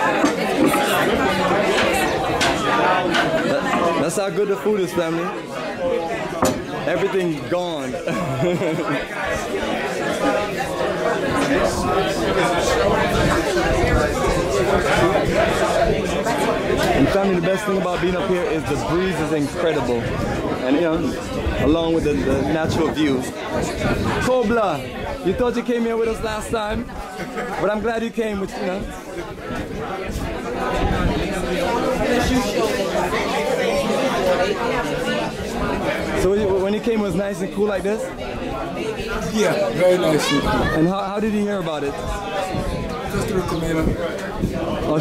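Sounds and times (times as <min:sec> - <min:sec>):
diners chattering: 0:00.0 - 0:45.0.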